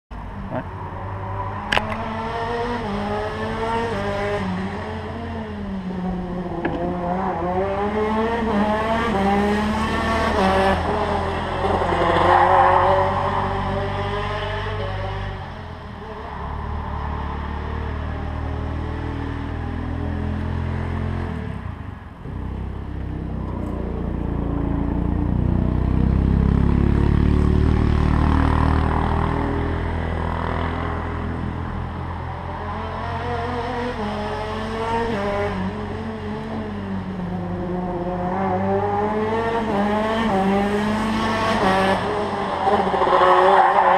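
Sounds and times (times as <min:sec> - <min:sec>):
racing kart engines revving: 0:00.5 - 0:43.9.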